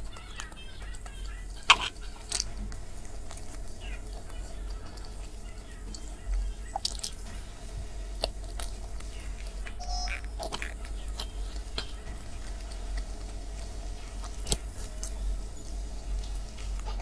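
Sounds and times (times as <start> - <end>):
chewing and wet mouth noises: 0.0 - 17.0.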